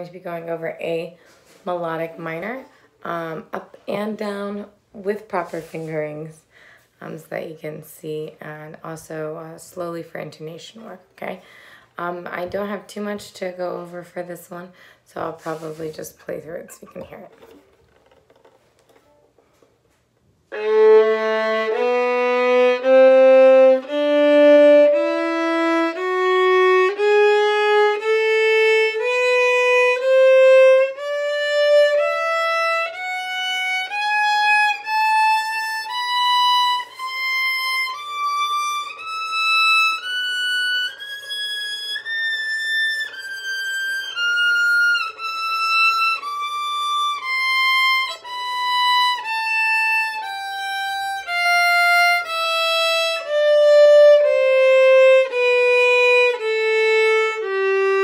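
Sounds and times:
violin playing bowed scale: 20.5s - 58.0s.

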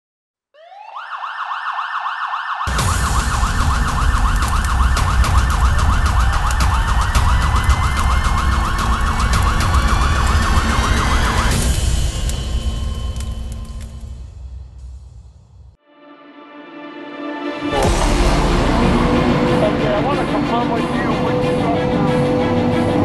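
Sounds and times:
warbling emergency siren: 0.6s - 12.1s, 17.6s - 23.0s.

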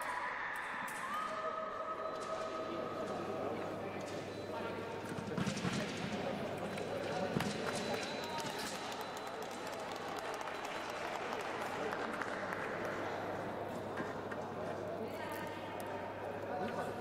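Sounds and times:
murmur of voices: 0.0s - 17.0s.

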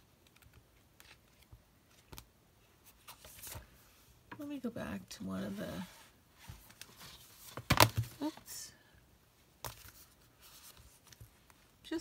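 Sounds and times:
light paper rustle: 2.8s - 3.7s.

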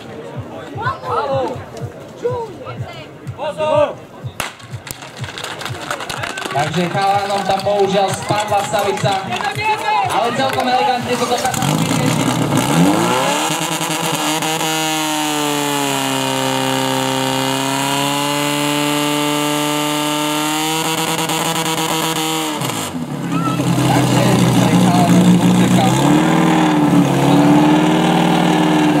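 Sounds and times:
pump engine revving: 10.5s - 29.0s.

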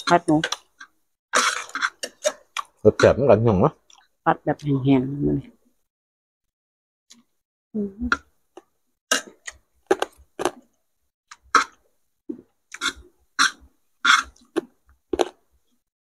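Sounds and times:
chewing crunchy food: 0.4s - 3.0s, 9.1s - 10.7s, 12.4s - 15.8s.

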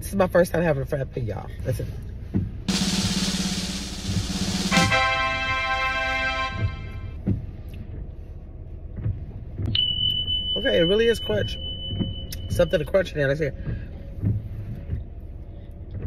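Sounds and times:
drum roll: 2.7s - 7.1s
held musical note: 2.7s - 7.2s.

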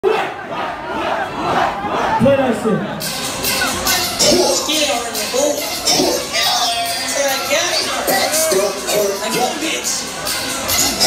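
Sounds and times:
concert crowd yelling: 5.7s - 11.0s.

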